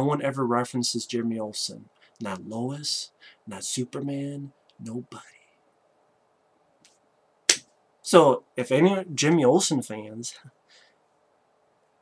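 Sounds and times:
faint hiss: 0.0 - 12.0.

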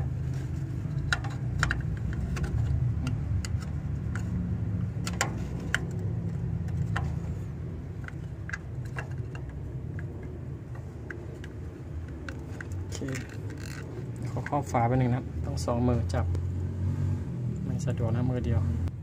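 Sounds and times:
wires and tubing clicking: 0.0 - 15.6
steady low rumble: 0.0 - 19.0.

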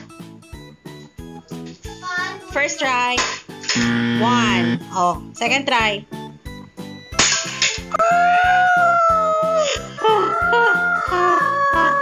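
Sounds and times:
background music with steady beat: 0.0 - 12.0
wavering high note: 3.8 - 4.8.

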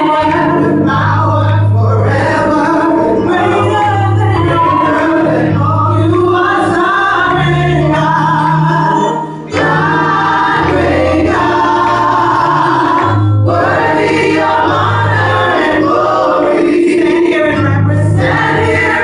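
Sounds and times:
group singing in harmony: 0.0 - 19.0.

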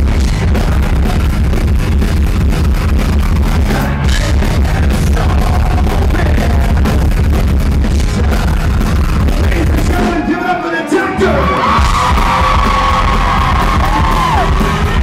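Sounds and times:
rock band playing live: 0.0 - 15.0
man singing into a microphone: 3.6 - 7.1, 8.0 - 11.7.

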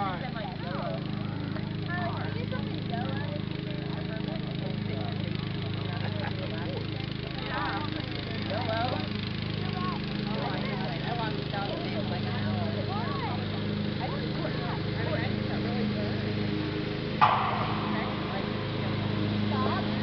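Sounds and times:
distant voices talking and calling: 17.2 - 20.0
steady low hum: 17.2 - 20.0.

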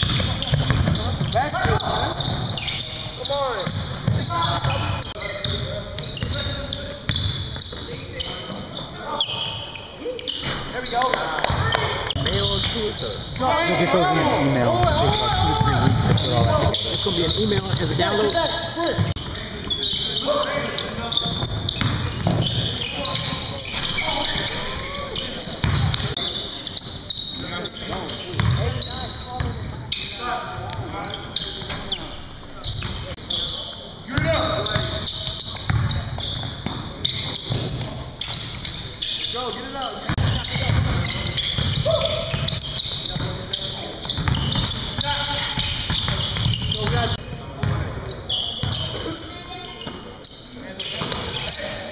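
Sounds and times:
basketball bouncing on hardwood floor: 0.0 - 1.8, 35.7 - 35.9, 40.1 - 41.9
basketball bouncing: 0.0 - 2.4, 14.7 - 16.8, 21.3 - 23.3, 25.6 - 26.2, 28.3 - 28.7, 35.6 - 36.9, 40.1 - 42.6, 44.0 - 47.9
sneakers squeaking: 0.0 - 51.9
players calling out: 0.1 - 51.9.

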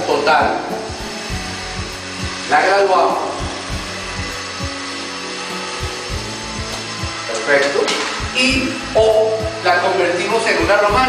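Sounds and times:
background music: 0.0 - 11.0
window shade motor whirring: 0.0 - 11.0.

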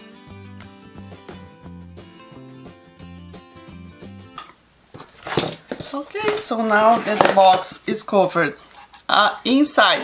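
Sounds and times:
background music: 0.0 - 4.5.

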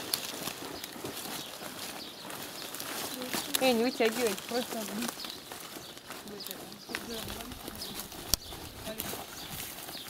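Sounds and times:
dry bark rustling and crackling: 0.0 - 10.0.

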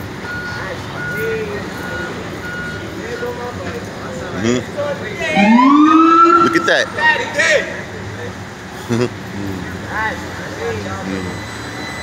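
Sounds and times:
street traffic: 0.0 - 12.0
reversing alarm beeping: 0.2 - 3.4, 5.3 - 7.2, 10.9 - 12.0.

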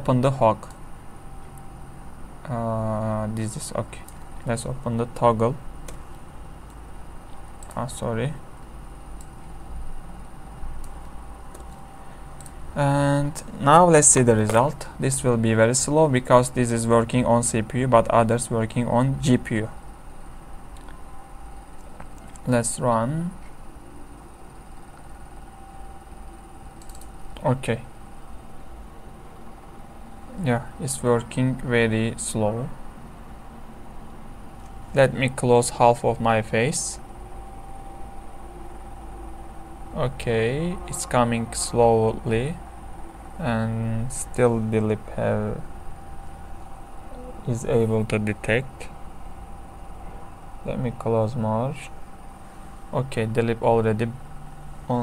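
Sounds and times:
low steady hum: 0.0 - 55.0
faint high steady tone: 6.5 - 55.0
faint computer clicks: 26.7 - 27.5.

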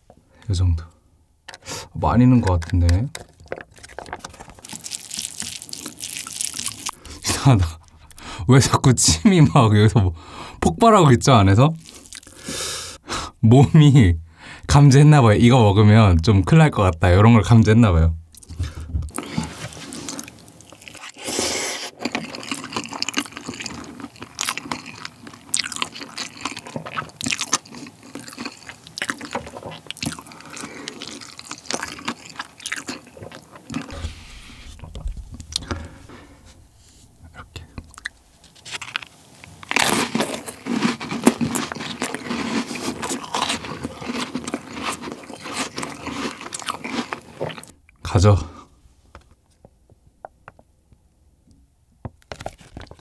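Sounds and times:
chewing and slurping noodles: 3.2 - 8.1, 11.8 - 12.6, 18.4 - 36.6, 37.8 - 47.7.

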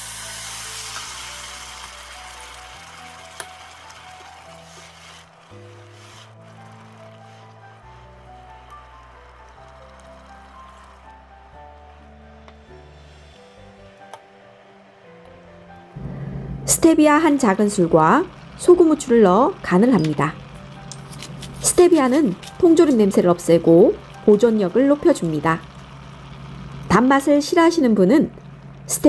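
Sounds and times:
background music: 0.0 - 29.0
pan sizzling: 0.0 - 29.0.

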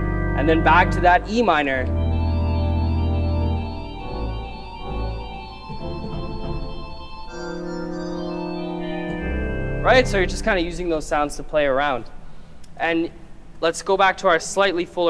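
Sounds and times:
pipe organ chords: 0.0 - 12.5.

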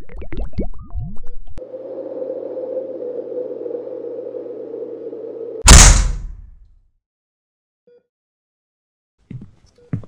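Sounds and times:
steady hum: 1.6 - 6.5
door banging open: 5.7 - 6.4.

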